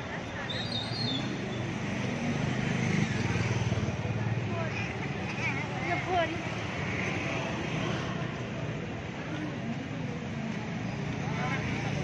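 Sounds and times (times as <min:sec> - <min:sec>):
crowd chatter: 0:00.0 - 0:12.0
street traffic noise: 0:00.0 - 0:12.0.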